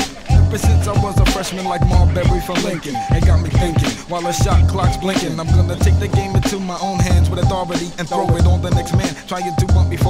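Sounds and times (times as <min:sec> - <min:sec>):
heavy kick drum beat: 0:00.0 - 0:10.0
rapping: 0:00.0 - 0:10.0.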